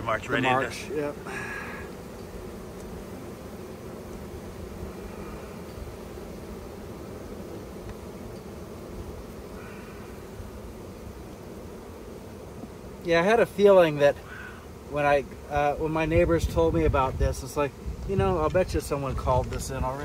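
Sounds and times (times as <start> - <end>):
bees buzzing: 0.0 - 20.0.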